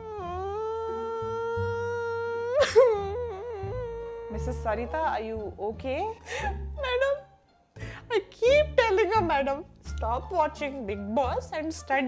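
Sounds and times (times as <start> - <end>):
woman wailing and sobbing: 0.0 - 5.2, 6.2 - 7.3.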